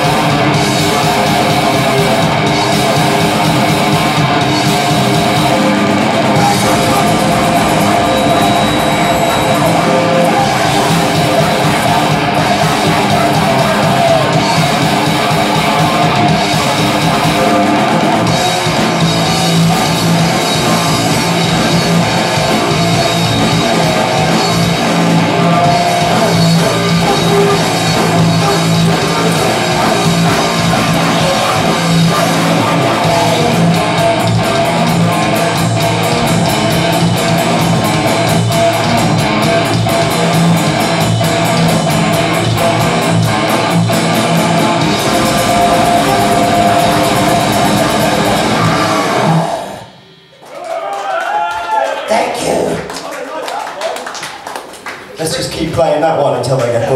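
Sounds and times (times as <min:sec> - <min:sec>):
drum kit: 0:00.0 - 0:50.3
distorted electric guitar: 0:00.0 - 0:50.4
loud grindcore band: 0:00.0 - 0:56.9.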